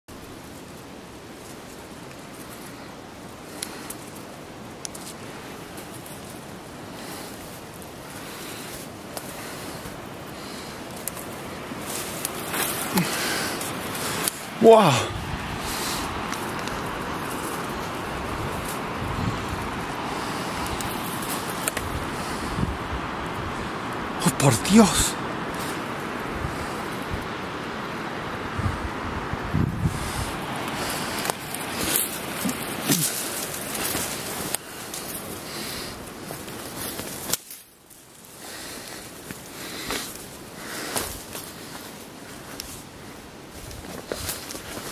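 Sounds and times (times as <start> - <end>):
footsteps through undergrowth: 0.1 - 22.7, 29.7 - 44.9
rushing outdoor noise: 0.1 - 44.9
wind blowing across microphone: 0.1 - 44.9.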